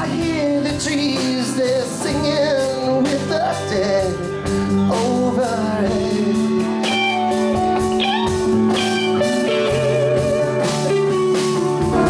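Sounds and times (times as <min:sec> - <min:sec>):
bass guitar: 0:00.0 - 0:12.0
electric guitar with bending notes: 0:00.0 - 0:12.0
drum beat with cymbals: 0:09.3 - 0:12.0.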